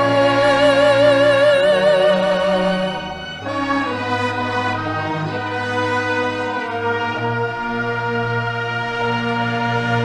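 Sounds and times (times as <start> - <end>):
orchestra holding sustained chords: 0.0 - 10.0.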